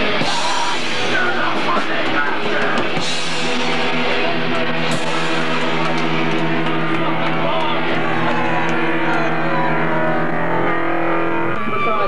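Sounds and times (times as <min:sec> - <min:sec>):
distorted electric guitars: 0:00.0 - 0:12.0.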